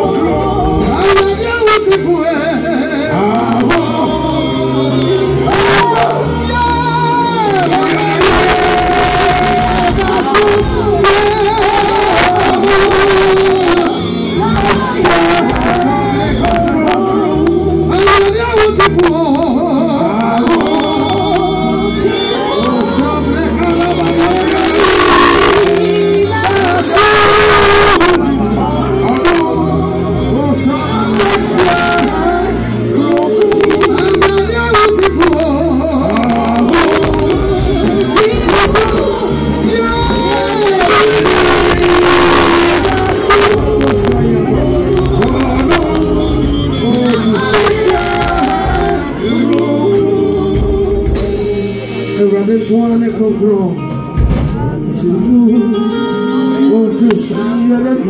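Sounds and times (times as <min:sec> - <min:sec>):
woman singing gospel: 0:00.0 - 0:52.2
band playing bass and keyboard: 0:00.0 - 0:58.0.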